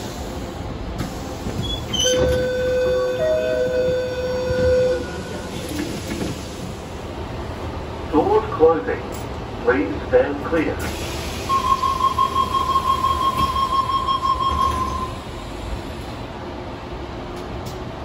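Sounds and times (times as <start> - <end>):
train and station rumble: 0.0 - 18.0
loud held tone: 11.5 - 15.2.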